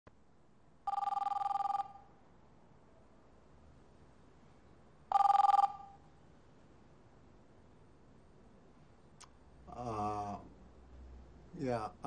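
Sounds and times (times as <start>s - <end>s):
telephone ringer two-tone trill: 0.9s - 2.0s, 5.1s - 6.0s.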